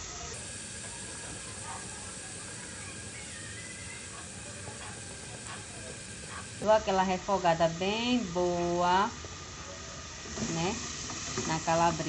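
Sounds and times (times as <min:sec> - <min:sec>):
sausage sizzling in oil: 0:00.0 - 0:12.0.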